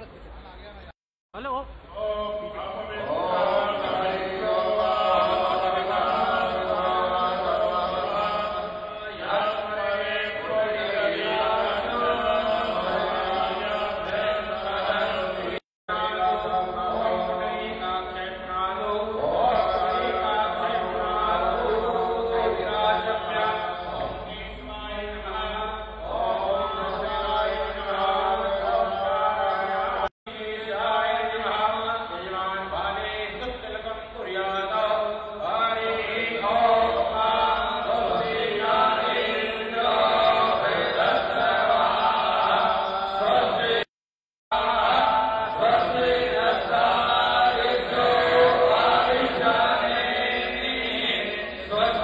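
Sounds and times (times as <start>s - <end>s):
priest chanting into a microphone: 1.4s - 43.9s.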